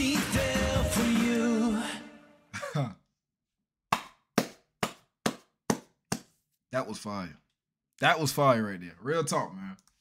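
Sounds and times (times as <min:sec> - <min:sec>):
song ending: 0:00.0 - 0:02.5
hand clapping: 0:03.9 - 0:06.3.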